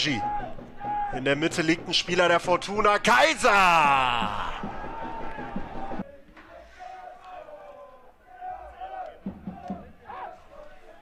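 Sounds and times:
spectators shouting: 0:00.0 - 0:01.3, 0:03.0 - 0:11.0
crowd reaction: 0:03.3 - 0:11.0.

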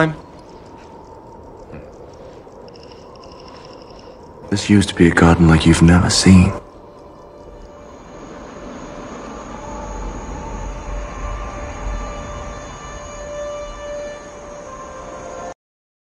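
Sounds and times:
sustained film score tones: 0:00.0 - 0:15.6
low rumble: 0:00.1 - 0:14.9.

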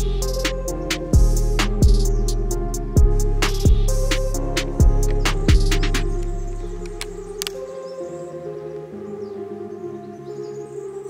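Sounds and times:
slow ambient music: 0:00.0 - 0:11.0
sharp click: 0:05.0 - 0:07.6.

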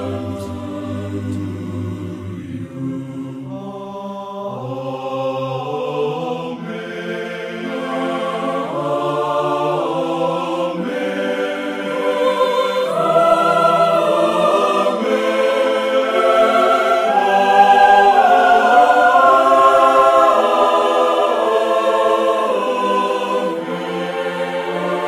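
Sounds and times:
choir singing held chords: 0:00.0 - 0:25.0.

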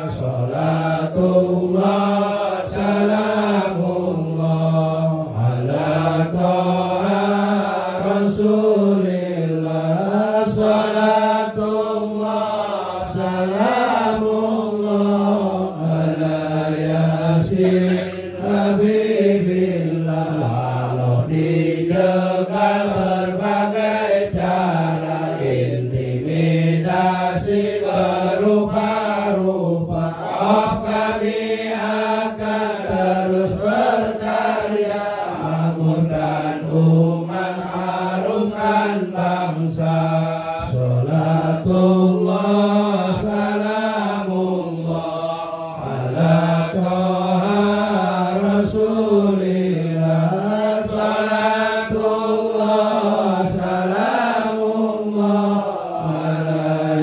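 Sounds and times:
man chanting: 0:00.0 - 0:57.0.

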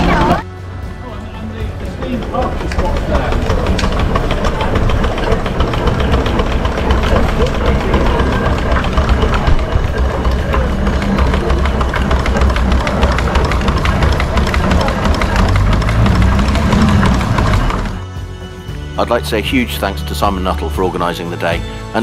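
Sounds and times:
continuous low rumble: 0:00.0 - 0:18.8
steam engine mechanical clatter: 0:01.2 - 0:18.3.

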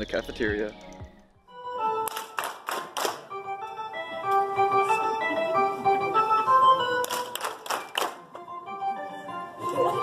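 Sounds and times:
background music: 0:00.0 - 0:10.0
crowd cheering and clapping: 0:02.1 - 0:03.3, 0:07.0 - 0:08.2.

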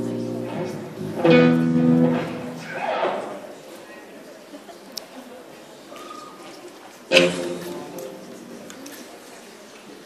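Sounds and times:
electric guitar chord ringing: 0:00.0 - 0:02.7.

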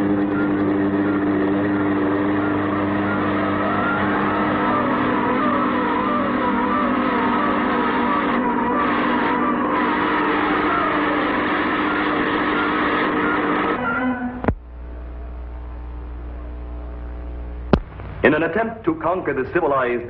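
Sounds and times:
whirring spinning machine: 0:00.0 - 0:20.0.

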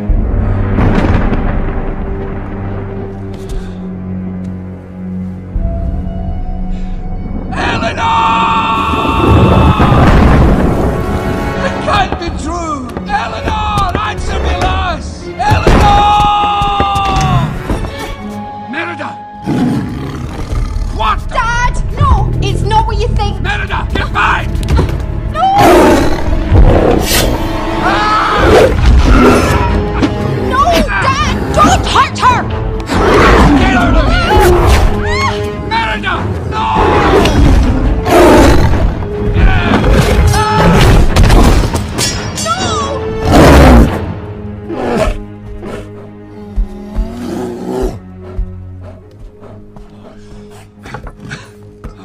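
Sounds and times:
orchestral film score: 0:00.0 - 0:52.0
bear roaring: 0:19.4 - 0:21.0, 0:44.6 - 0:49.6.

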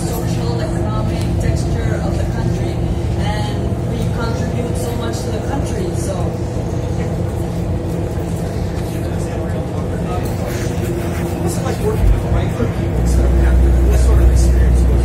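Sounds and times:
heavy low rumble: 0:00.0 - 0:15.0
indistinct chatter: 0:00.0 - 0:15.0
steady low hum: 0:00.0 - 0:15.0.

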